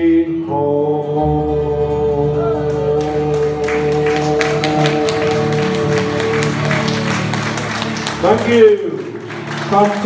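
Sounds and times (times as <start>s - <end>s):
audience clapping: 2.6s - 10.0s.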